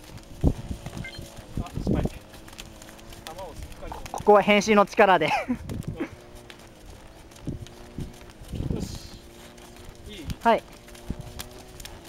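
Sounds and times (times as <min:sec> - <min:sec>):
horse hooves trotting on dirt: 0:00.0 - 0:12.0.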